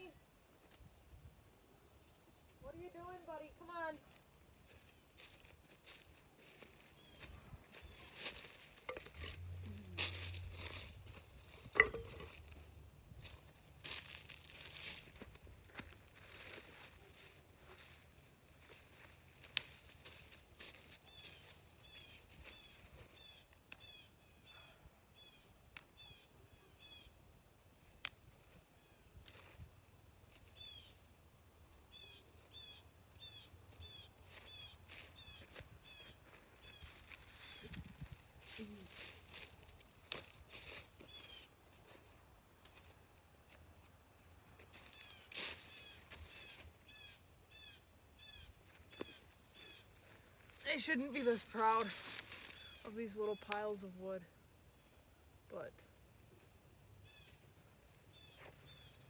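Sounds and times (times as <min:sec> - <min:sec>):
dry brush and leaves rustling: 0:02.4 - 0:24.3, 0:27.8 - 0:54.2, 0:57.0 - 0:59.0
small bird chirping: 0:45.0 - 0:49.9, 0:58.1 - 0:59.0.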